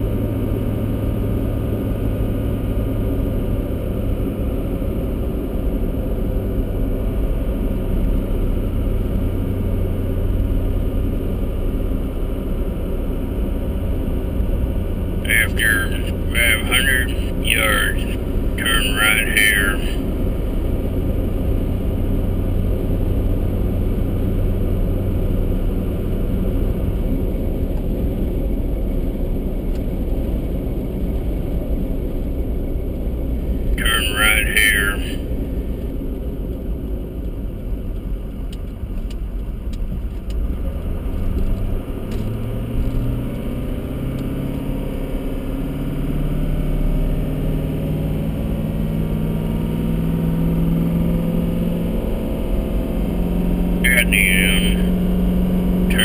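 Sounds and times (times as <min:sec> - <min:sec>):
car engine from inside cabin: 0:00.0 - 0:56.0
tyre road noise: 0:05.8 - 0:46.9.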